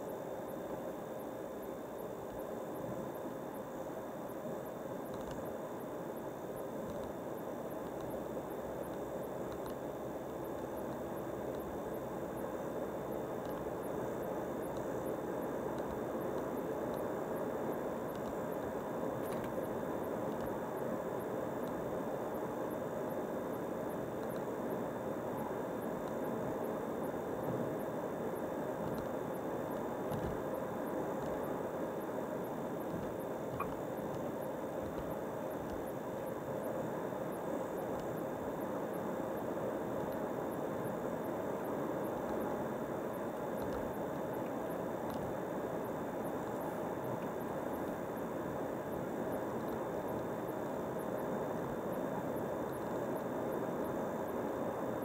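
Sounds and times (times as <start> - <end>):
faint high steady tone: 0.0 - 55.0.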